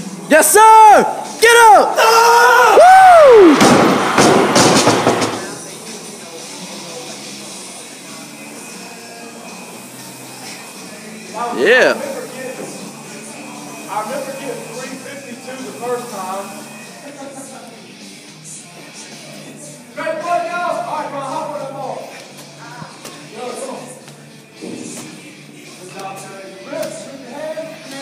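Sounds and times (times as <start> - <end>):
man yelling: 0.3 - 3.6, 11.5 - 12.0
barbell crashing on floor: 3.5 - 5.5.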